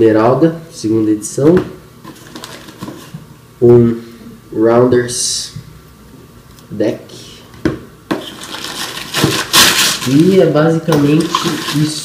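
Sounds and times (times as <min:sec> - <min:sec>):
packing paper rustling: 0:02.1 - 0:03.1, 0:08.2 - 0:10.4.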